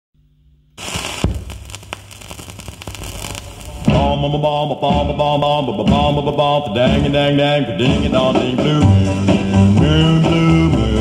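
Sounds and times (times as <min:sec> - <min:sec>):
faint hum: 0:00.2 - 0:05.8
record crackle and pops: 0:00.4 - 0:04.3.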